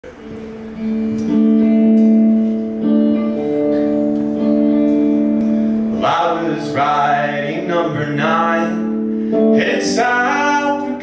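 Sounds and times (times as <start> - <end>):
electric guitar strumming chords: 0.0 - 11.0.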